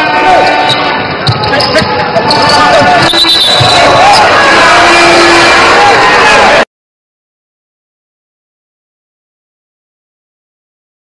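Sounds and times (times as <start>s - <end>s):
voices and hall noise: 0.0s - 6.7s
sneakers squeaking: 0.6s - 4.4s.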